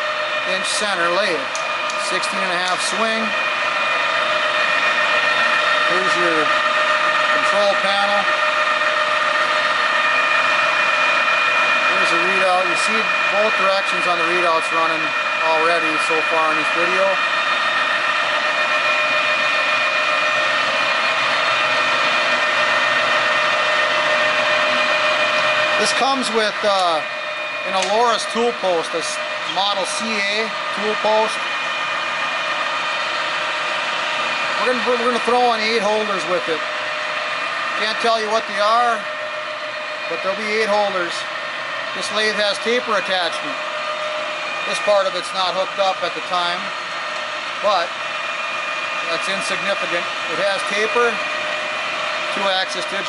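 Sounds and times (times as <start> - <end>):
lathe running with mechanical whine: 0.0 - 53.0.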